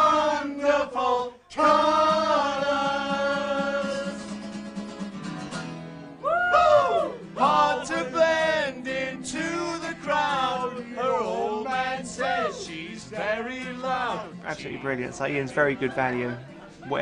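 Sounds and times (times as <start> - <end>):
group singing along: 0.0 - 4.4, 7.2 - 14.4
men singing with sliding pitch: 0.0 - 4.4, 7.0 - 14.4
acoustic guitar: 0.0 - 17.0.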